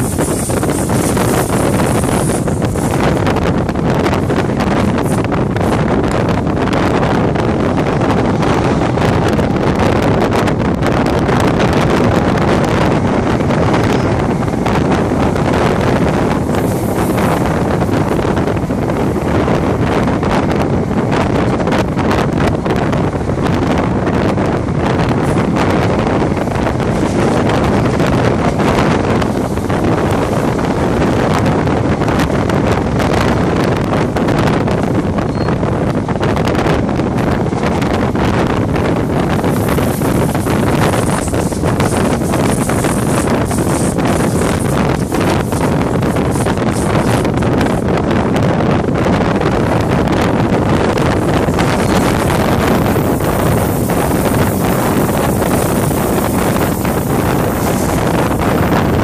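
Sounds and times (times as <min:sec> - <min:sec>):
train rumbling on track: 0:00.0 - 0:59.0
wind buffeting microphone: 0:00.0 - 0:59.0.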